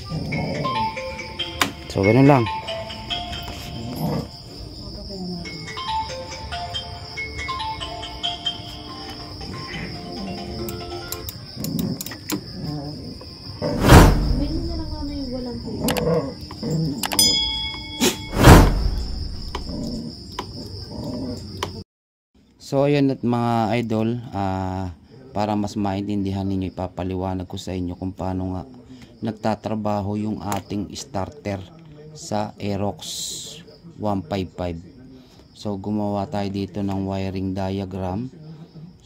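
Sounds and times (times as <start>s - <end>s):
background music: 0.0s - 4.3s, 5.5s - 11.4s.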